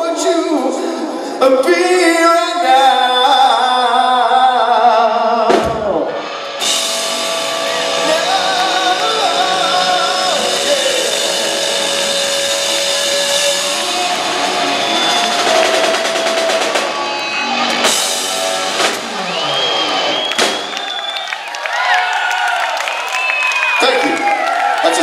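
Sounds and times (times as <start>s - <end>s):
live rock band playing: 5.1s - 21.0s
drum and cymbal hits: 5.5s - 21.0s.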